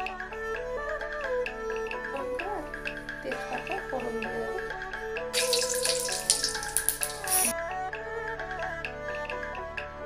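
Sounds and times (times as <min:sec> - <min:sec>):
background music: 0:00.0 - 0:10.0
spices sizzling in hot oil: 0:05.4 - 0:07.5.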